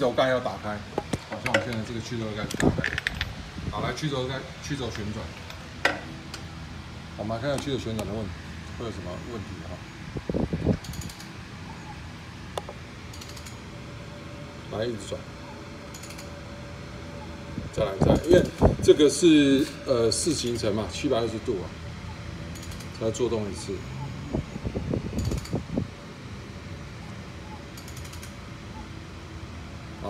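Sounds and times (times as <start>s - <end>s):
steady hum: 0.0s - 30.0s
mechanical clicks and ticks: 12.6s - 13.6s, 15.9s - 16.3s, 22.5s - 23.0s, 27.6s - 28.4s.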